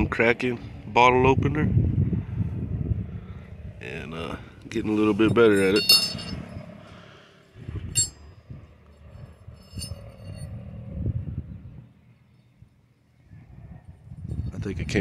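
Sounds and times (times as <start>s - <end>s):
light metallic clinks: 5.2s - 6.7s, 7.9s - 10.7s.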